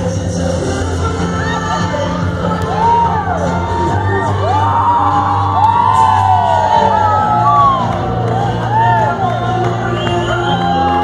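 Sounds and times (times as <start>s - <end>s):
dance music with bass line: 0.0s - 11.0s
party guests whooping and cheering: 1.2s - 11.0s.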